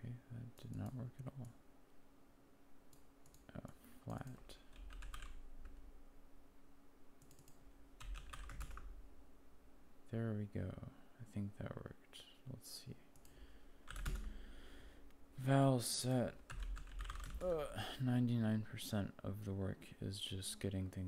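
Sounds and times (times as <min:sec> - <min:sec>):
faint steady hum: 0:00.0 - 0:21.0
typing on computer keyboard: 0:04.2 - 0:05.4, 0:07.2 - 0:08.9, 0:13.9 - 0:14.3, 0:16.5 - 0:17.4.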